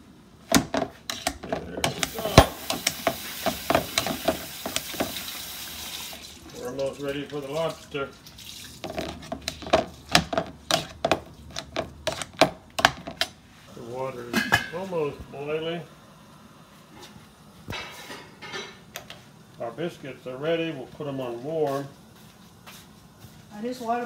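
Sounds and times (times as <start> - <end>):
potato masher knocking against pot: 0.5 - 5.2, 8.9 - 13.2.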